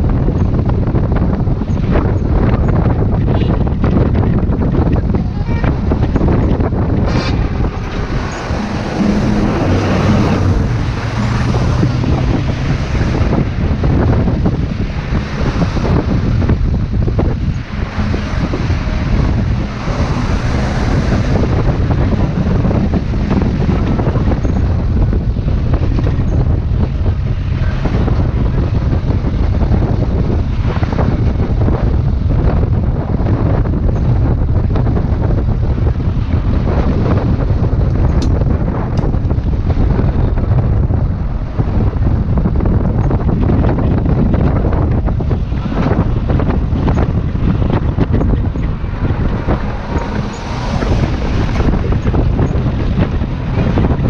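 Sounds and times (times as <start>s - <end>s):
road noise: 0.0s - 54.0s
van engine droning: 0.0s - 54.0s
wind rushing over microphone: 0.0s - 54.0s.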